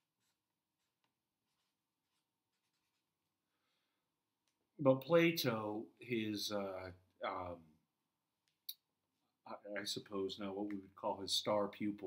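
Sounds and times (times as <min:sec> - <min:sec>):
marker scratching: 0:00.0 - 0:03.2.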